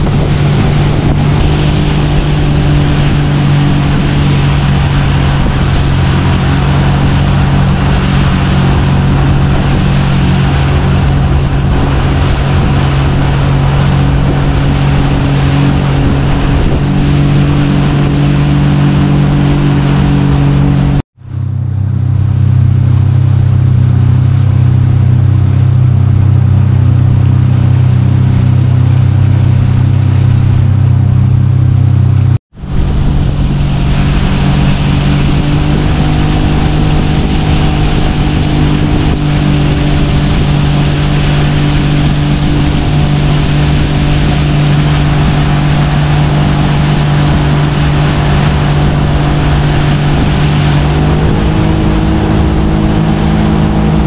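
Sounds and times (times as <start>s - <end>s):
boat engine droning: 0.0s - 54.0s
wind and water rushing: 0.0s - 54.0s.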